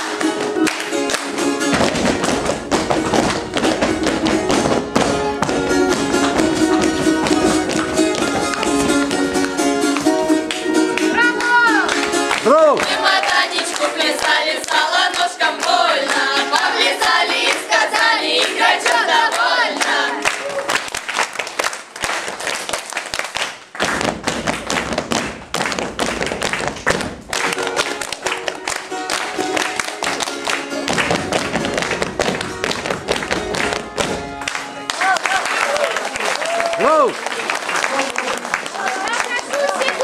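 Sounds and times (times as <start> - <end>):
voices singing folk dance song: 0.0 - 20.6
group clapping in rhythm: 0.0 - 40.0.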